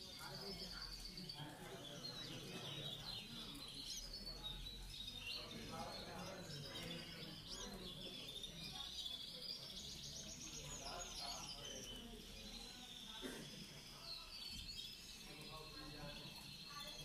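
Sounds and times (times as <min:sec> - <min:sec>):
canaries chirping and trilling: 0:00.0 - 0:17.0.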